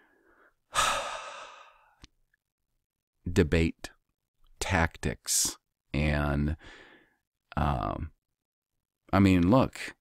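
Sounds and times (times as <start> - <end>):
man sighing: 0.7 - 2.1.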